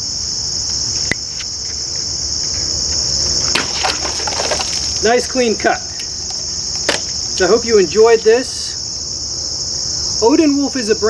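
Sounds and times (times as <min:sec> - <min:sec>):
crickets chirping: 0:00.0 - 0:11.0
machete slicing plastic bottle: 0:03.4 - 0:05.0.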